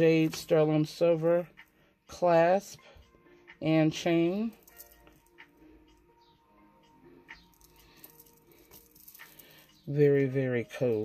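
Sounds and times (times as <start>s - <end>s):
faint background music: 0.0s - 11.0s
stone beads clicking: 7.4s - 9.5s.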